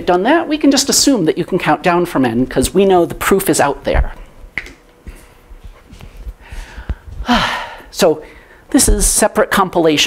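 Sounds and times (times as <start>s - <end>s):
faint low thumps: 5.4s - 7.8s.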